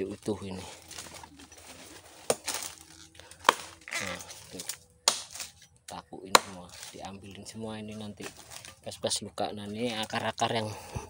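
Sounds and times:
dove cooing: 0.5 - 4.5.

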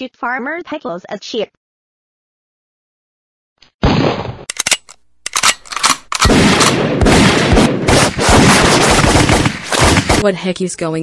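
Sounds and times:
gunshots: 3.8 - 10.3
rapid continuous gunfire: 6.2 - 10.3.

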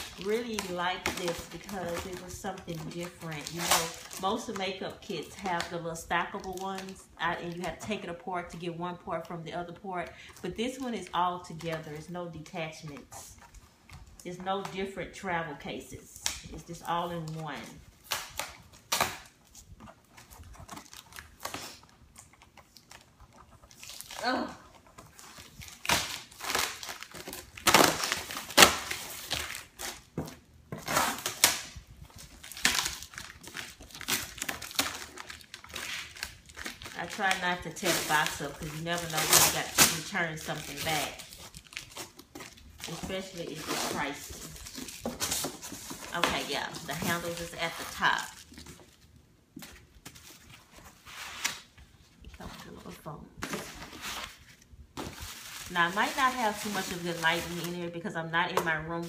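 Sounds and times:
bubble wrap crinkling: 0.0 - 8.0, 16.3 - 59.0
packing tape and cardboard tearing: 0.0 - 8.1, 16.2 - 49.0, 52.5 - 57.9.

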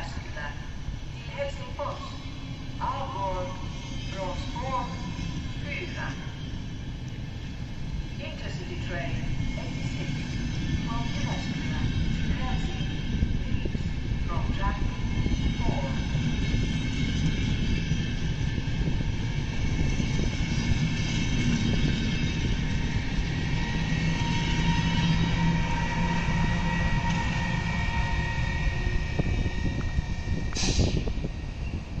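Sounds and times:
train wheels rumbling on rails: 0.0 - 32.0.

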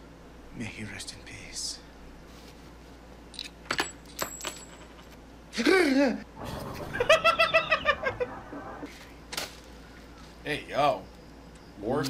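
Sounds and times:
metal coins clinking: 3.3 - 5.2.

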